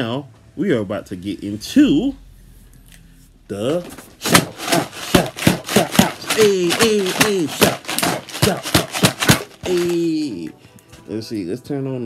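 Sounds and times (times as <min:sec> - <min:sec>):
man beatboxing: 0:04.2 - 0:10.0.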